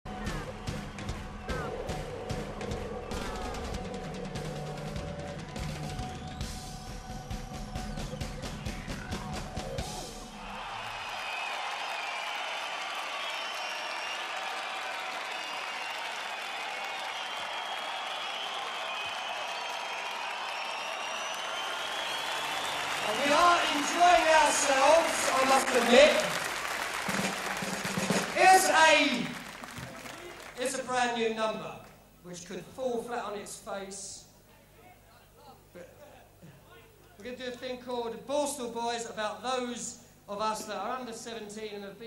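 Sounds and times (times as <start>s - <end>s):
crowd cheering and clapping: 0.0s - 31.0s
intro music with drum beat: 0.1s - 10.7s, 26.8s - 28.4s
crowd whistling: 0.1s - 30.6s.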